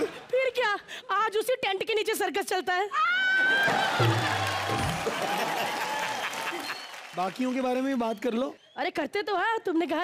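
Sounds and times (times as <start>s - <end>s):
audience applauding: 3.4s - 8.6s
audience laughing: 3.6s - 6.8s.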